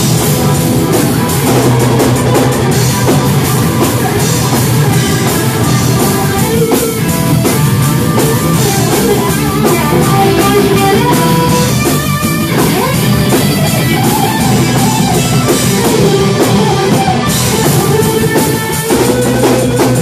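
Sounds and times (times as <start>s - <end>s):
rock band playing: 0.0s - 20.0s.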